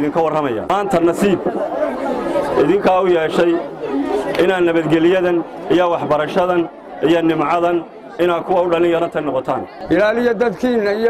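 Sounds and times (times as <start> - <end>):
man speaking into a microphone: 0.0 - 1.7, 2.6 - 3.8, 4.4 - 11.0.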